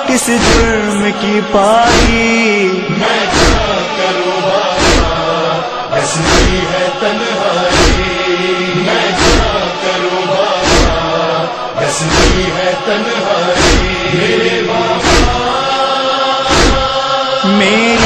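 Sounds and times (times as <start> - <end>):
voices chanting a lament: 0.0 - 18.0
chest-beating thumps: 0.3 - 1.0, 1.8 - 2.4, 3.3 - 3.8, 6.2 - 6.7, 7.7 - 8.2, 10.6 - 11.0, 12.0 - 12.6, 13.6 - 15.6, 16.5 - 16.9.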